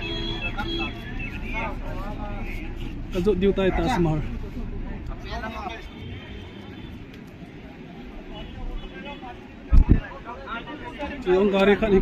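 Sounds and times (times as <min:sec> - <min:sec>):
people talking: 0:00.0 - 0:06.2, 0:07.3 - 0:12.0.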